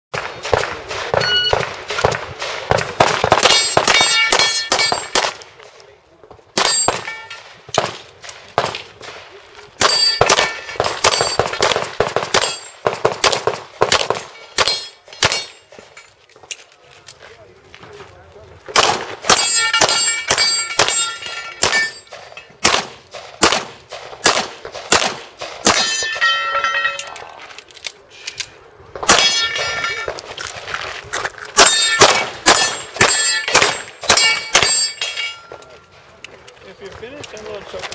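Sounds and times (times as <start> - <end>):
pistol shots: 0.2 - 5.7, 6.5 - 9.2, 9.8 - 15.8, 18.7 - 26.2, 29.0 - 30.2, 31.6 - 35.6
steel targets clanging: 3.4 - 5.3, 6.6 - 7.6, 9.8 - 11.6, 12.3 - 12.8, 14.1 - 16.2, 19.3 - 22.6, 25.7 - 27.2, 29.1 - 30.3, 31.5 - 36.0.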